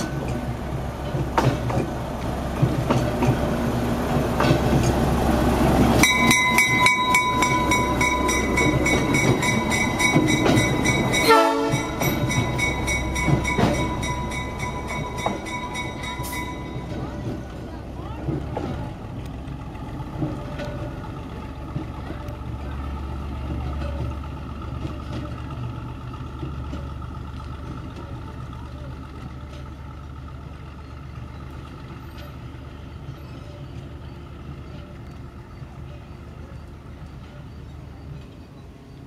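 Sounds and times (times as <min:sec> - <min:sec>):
diesel locomotive engine rumbling: 0:00.0 - 0:39.0.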